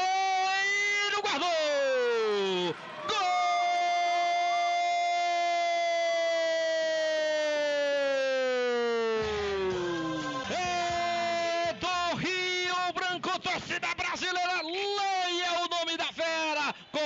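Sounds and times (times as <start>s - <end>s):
radio commentator shouting goal: 0.0s - 5.6s, 8.1s - 17.0s.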